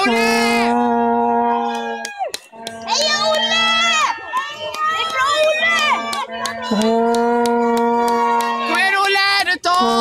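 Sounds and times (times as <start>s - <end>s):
plastic horn blown: 0.0s - 8.7s
spectators cheering: 1.5s - 10.0s
sharp claps: 1.7s - 9.9s.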